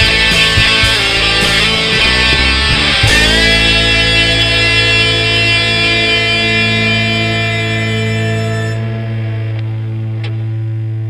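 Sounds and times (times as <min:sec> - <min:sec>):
rock band chord ringing out: 0:00.0 - 0:10.6.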